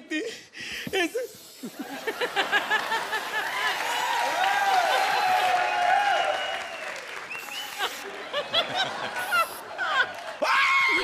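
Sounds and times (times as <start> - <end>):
studio audience applauding: 2.4 - 11.0.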